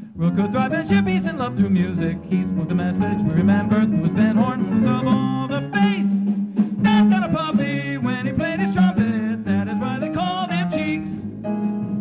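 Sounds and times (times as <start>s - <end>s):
low accompaniment: 0.0s - 12.0s.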